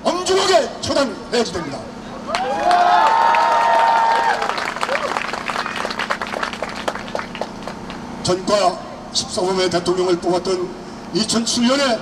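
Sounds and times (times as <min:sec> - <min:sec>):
crowd applauding: 0:02.3 - 0:08.0.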